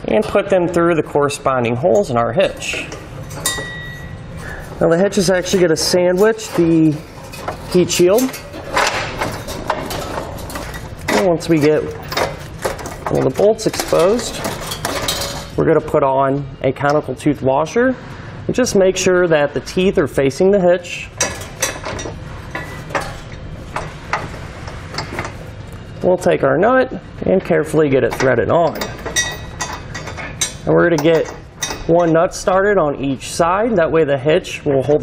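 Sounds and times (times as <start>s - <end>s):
low background hum: 0.0s - 35.0s
rubbing and handling noise: 2.4s - 15.6s
metal hitch knocks and clicks: 2.7s - 4.1s, 6.2s - 15.6s, 21.2s - 25.4s, 28.0s - 32.4s.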